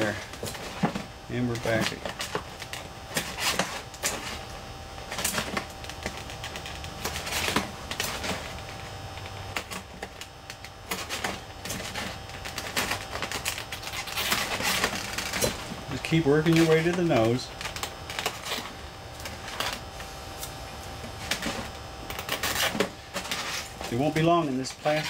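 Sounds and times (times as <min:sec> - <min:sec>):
tape rustling on foam: 0:00.0 - 0:25.0.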